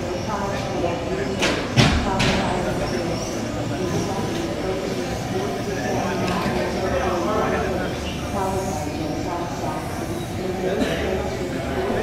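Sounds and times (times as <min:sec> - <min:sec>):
indistinct voices in a hall: 0:00.0 - 0:12.0.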